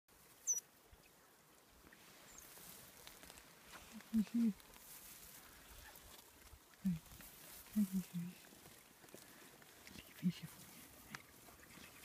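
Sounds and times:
faint otter chirp: 0.4s - 1.2s.

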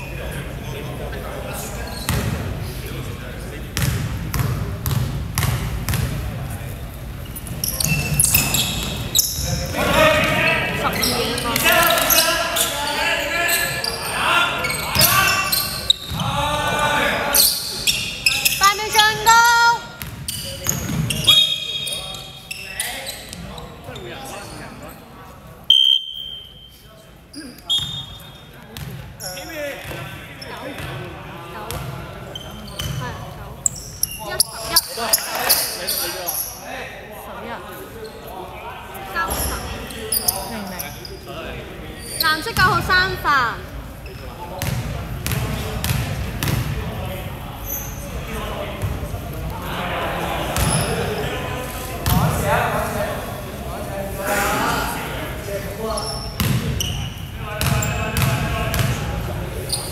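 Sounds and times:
sneakers squeaking: 1.6s - 2.8s, 3.8s - 16.5s, 17.3s - 36.7s, 39.0s - 49.5s, 50.4s - 53.6s, 55.8s - 59.9s
players calling out: 7.4s - 24.6s.

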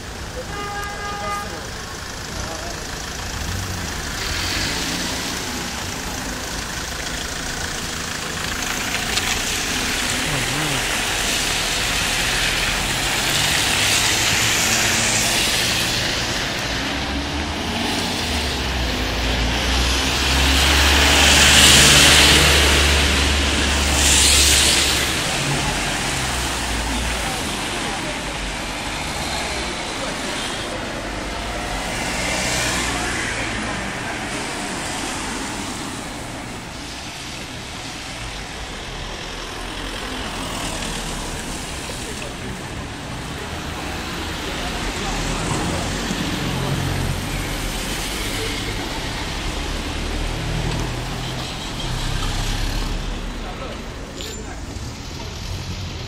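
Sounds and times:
cars passing: 0.0s - 56.0s
heavy vehicle engine humming: 0.0s - 56.0s.

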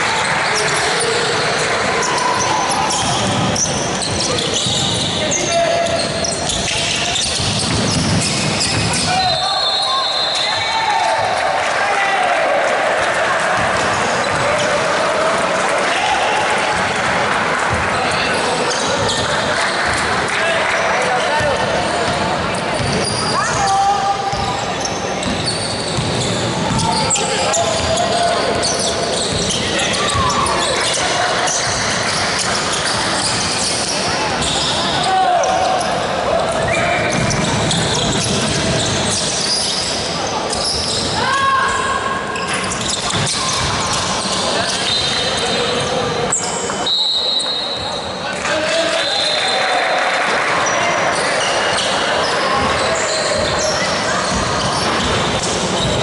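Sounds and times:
basketball bouncing on wooden court: 5.8s - 9.2s, 21.4s - 23.7s, 24.3s - 33.7s, 36.5s - 39.3s, 52.5s - 56.0s
people shouting: 41.2s - 42.2s.

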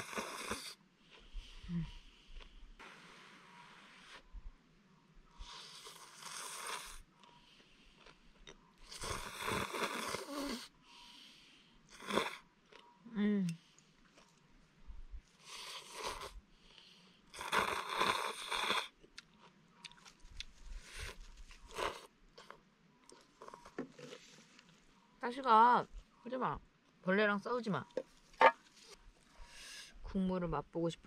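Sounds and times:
person slurping noodles: 0.0s - 0.8s, 5.4s - 7.0s, 8.8s - 10.7s, 11.9s - 12.4s, 15.4s - 16.4s, 17.3s - 19.0s
chewing: 7.2s - 10.3s, 12.0s - 13.0s, 13.7s - 14.5s, 17.4s - 24.7s.

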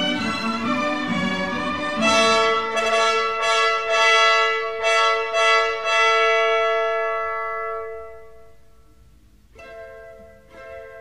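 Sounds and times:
orchestra brass chords: 0.0s - 8.8s.

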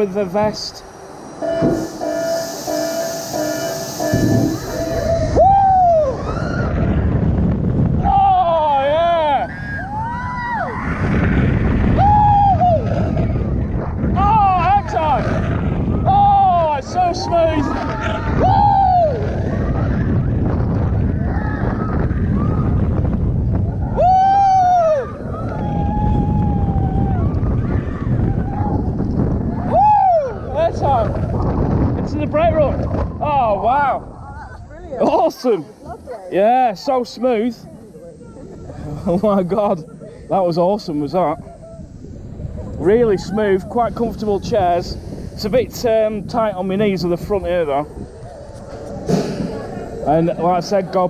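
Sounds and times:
wind buffeting microphone: 0.0s - 51.0s
riders screaming: 2.3s - 7.2s, 7.9s - 23.0s, 23.8s - 31.2s.

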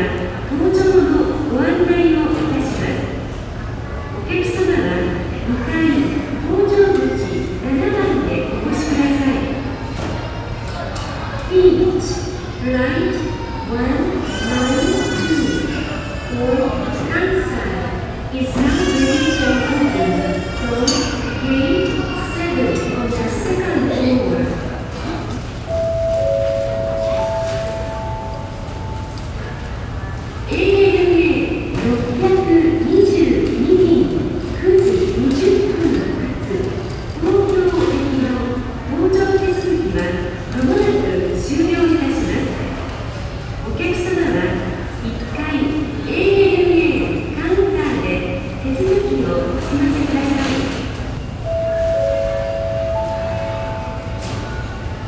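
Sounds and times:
low rumble of terminal hall: 0.0s - 55.0s
three-note public address chime: 25.7s - 29.2s, 51.4s - 54.7s.

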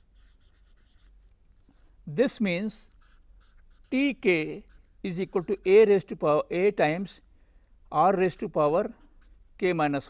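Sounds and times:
marker pen writing on board: 0.0s - 1.8s, 2.8s - 6.0s.

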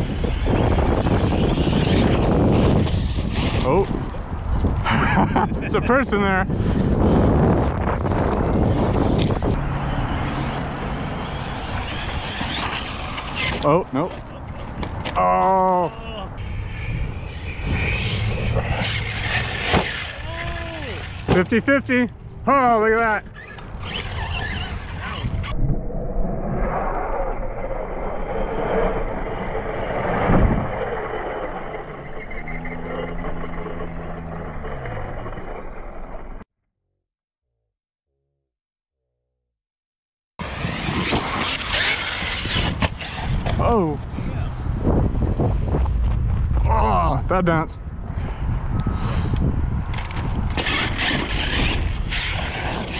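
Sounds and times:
rc truck rumbling over dirt: 0.0s - 15.2s, 16.4s - 25.6s, 26.6s - 36.4s, 40.4s - 47.2s, 49.6s - 52.9s
steady low rumble: 24.6s - 36.5s, 43.2s - 50.6s
low hum dropping in pitch: 24.8s - 36.4s.

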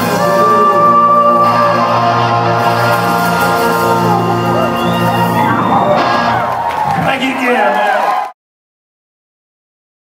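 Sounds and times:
electric guitars sustaining chord: 0.0s - 6.5s
audience whoops and cheers: 0.2s - 8.4s.

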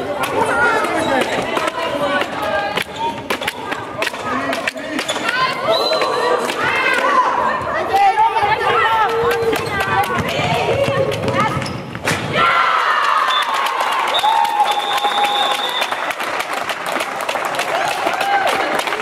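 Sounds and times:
players calling and shouting: 0.0s - 15.9s
ball bouncing on floor: 9.0s - 12.2s.

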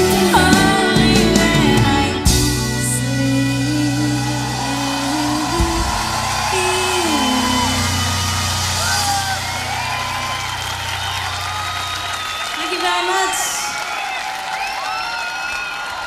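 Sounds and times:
live pop-rock band: 0.0s - 13.9s
crowd cheering and whooping: 3.6s - 16.0s.

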